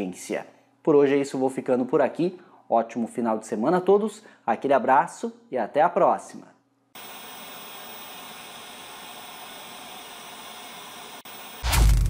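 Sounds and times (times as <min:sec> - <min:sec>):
deep boom: 0:11.6 - 0:12.0.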